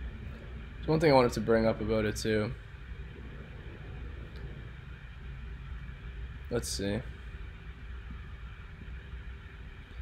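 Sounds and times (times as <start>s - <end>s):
low room rumble and hum: 0.0s - 10.0s.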